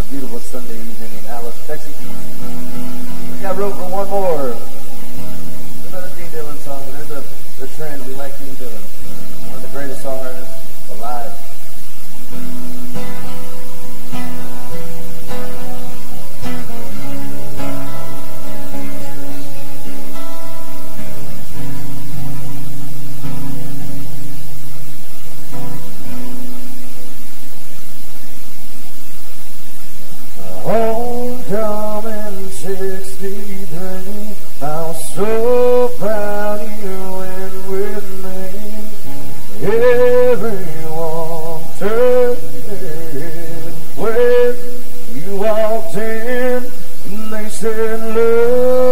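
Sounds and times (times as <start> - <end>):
acoustic guitars playing: 0.0 - 48.9
man singing: 3.3 - 4.8, 30.3 - 48.9.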